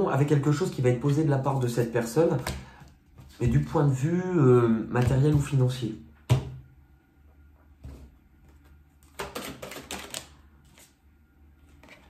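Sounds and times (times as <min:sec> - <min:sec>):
cards being shuffled: 0:07.9 - 0:11.0.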